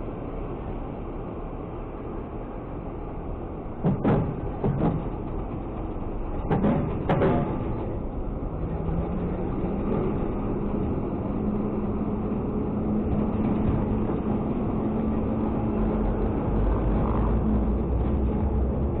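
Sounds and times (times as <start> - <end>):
garbage truck diesel engine: 1.7 - 19.0.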